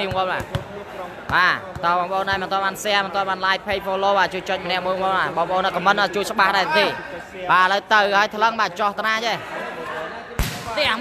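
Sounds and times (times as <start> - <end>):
volleyball being struck: 10.4 - 11.0.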